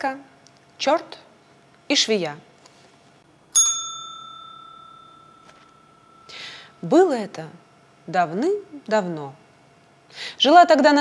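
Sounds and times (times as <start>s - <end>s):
small bell ringing: 3.5s - 6.8s.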